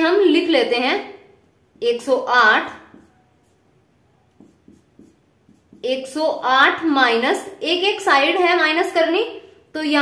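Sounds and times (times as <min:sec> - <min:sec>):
marker scratching on paper: 0:01.8 - 0:07.0.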